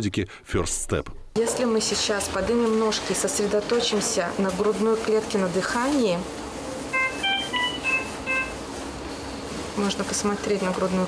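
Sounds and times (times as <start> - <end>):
electronic alarm beeps: 6.9 - 8.6.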